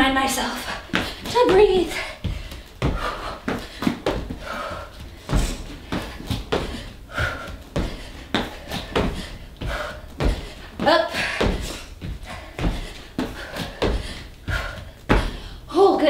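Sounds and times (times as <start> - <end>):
heavy panting breaths: 0.6 - 15.7
thuds of feet and hands on mat: 0.9 - 15.6.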